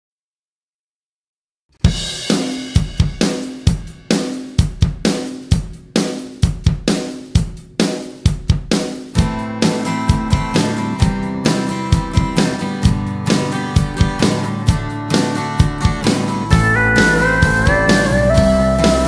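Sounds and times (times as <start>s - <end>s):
drum kit playing a steady beat: 1.8s - 19.0s
guitar: 9.1s - 19.0s.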